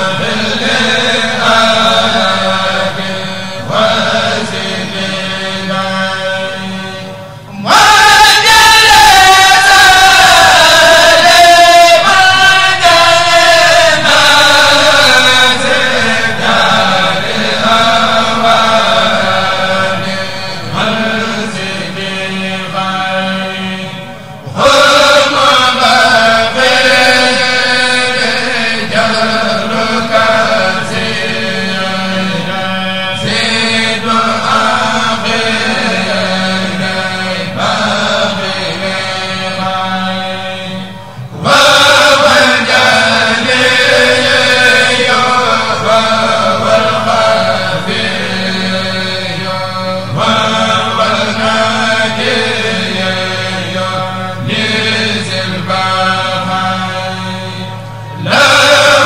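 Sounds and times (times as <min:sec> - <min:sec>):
men chanting in unison: 0:00.0 - 0:59.0.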